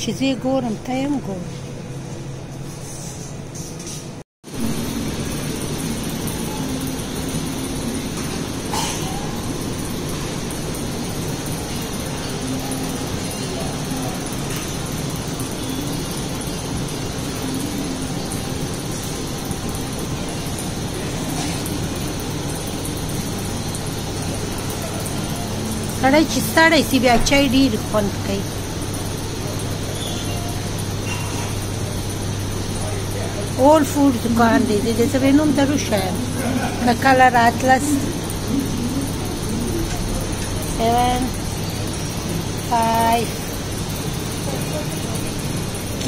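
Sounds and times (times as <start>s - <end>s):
shop background noise with low hum: 0.0s - 46.0s.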